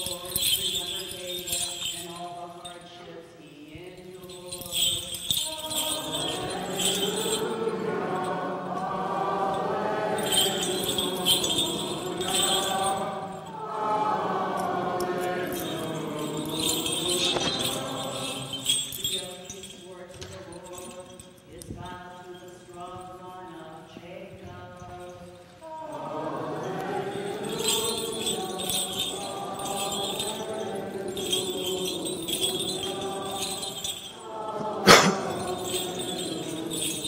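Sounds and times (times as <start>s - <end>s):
congregation singing a chant: 0.0s - 3.0s, 4.2s - 19.8s, 25.6s - 37.0s
small metal bells jingling: 0.0s - 37.0s.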